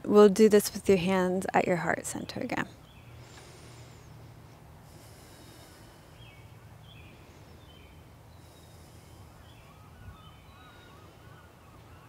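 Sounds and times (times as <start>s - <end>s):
birds chirping: 0.9s - 12.0s.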